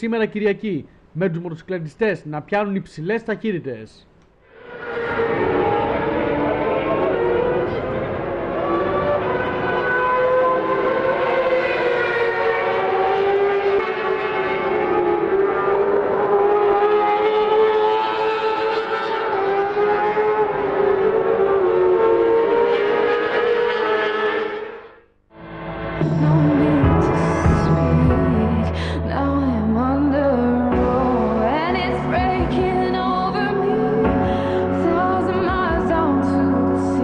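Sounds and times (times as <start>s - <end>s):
racing motorcycle engines: 4.6s - 25.0s.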